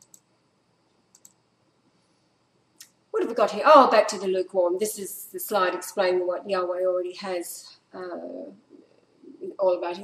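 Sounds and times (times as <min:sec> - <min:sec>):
faint computer clicks: 0:00.0 - 0:01.4.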